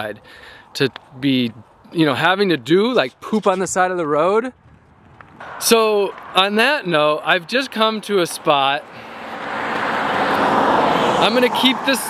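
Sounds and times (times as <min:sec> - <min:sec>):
vehicle passing on highway: 0:04.8 - 0:12.0.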